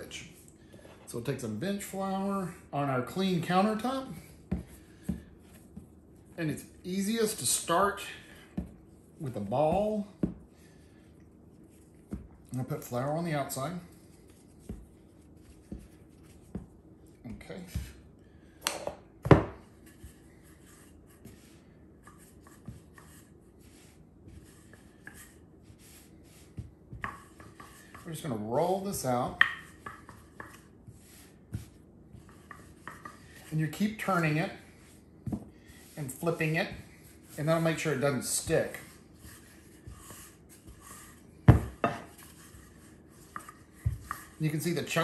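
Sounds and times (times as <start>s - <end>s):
rolling pin rubbing on dough: 1.8s - 18.1s, 19.6s - 45.0s.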